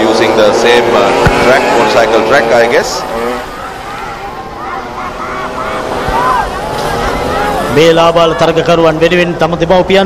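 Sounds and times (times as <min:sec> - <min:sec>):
motocross bike engines buzzing: 0:00.0 - 0:10.0.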